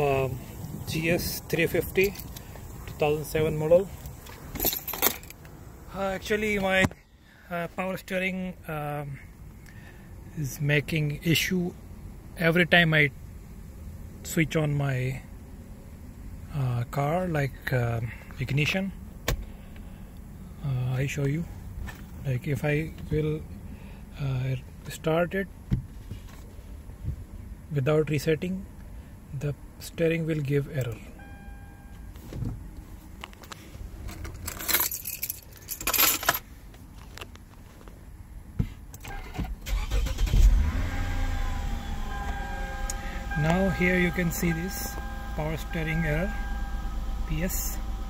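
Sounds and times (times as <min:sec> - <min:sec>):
man speaking: 0:00.0 - 0:02.2, 0:02.9 - 0:04.0, 0:05.9 - 0:09.2, 0:22.2 - 0:23.4, 0:43.3 - 0:46.4, 0:47.2 - 0:47.9
car engine starting and idling: 0:00.0 - 0:25.6, 0:38.9 - 0:48.0
electronic warning tone: 0:31.2 - 0:32.0, 0:41.6 - 0:47.9
brief jangling rattles: 0:34.1 - 0:36.4.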